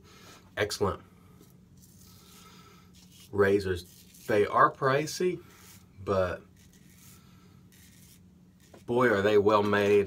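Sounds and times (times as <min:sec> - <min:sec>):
razor scraping stubble: 0:01.8 - 0:09.3.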